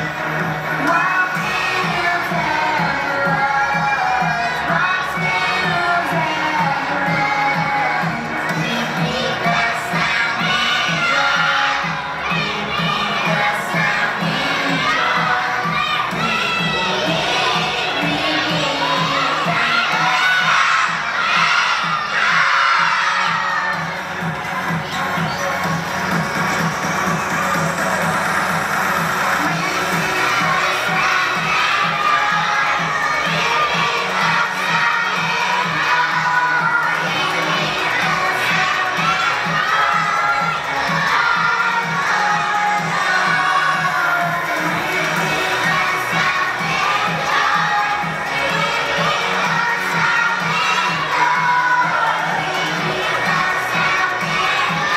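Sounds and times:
backing track with steady beat: 0:00.0 - 0:54.9
children singing loudly: 0:00.0 - 0:54.9.

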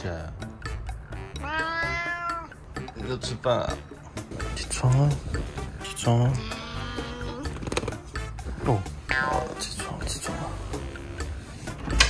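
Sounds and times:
cat meowing: 0:01.2 - 0:02.7, 0:06.3 - 0:07.7.

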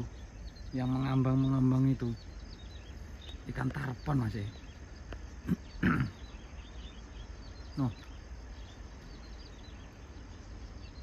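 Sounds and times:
faint high chirping: 0:00.0 - 0:11.0
steady low rumble: 0:00.0 - 0:11.0.

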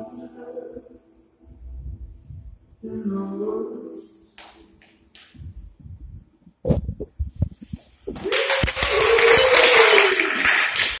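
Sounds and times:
person cheering: 0:08.2 - 0:10.5
audience applause: 0:08.2 - 0:11.0.

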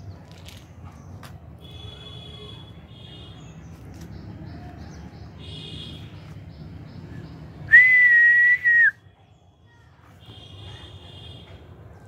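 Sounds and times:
person whistling high note: 0:07.7 - 0:09.0.

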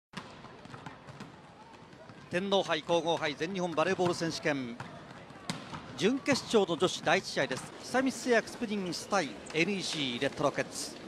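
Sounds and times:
murmur of crowd voices: 0:00.2 - 0:11.0
volleyballs hit and bouncing: 0:00.2 - 0:11.0.

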